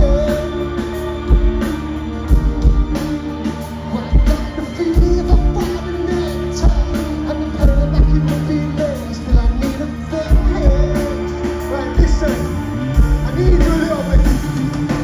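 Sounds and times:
person singing: 0.0 - 15.0
rock band playing: 0.0 - 15.0.

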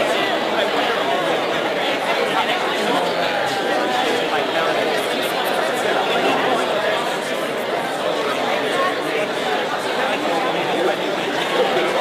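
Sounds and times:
audience chatter in a hall: 0.0 - 12.0.

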